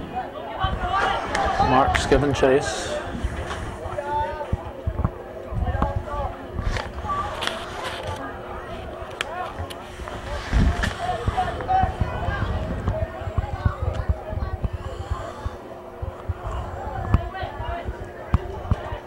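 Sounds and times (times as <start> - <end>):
distant people shouting: 0.0 - 2.3
faint steady hum: 0.0 - 19.0
low microphone rumble: 0.0 - 19.0.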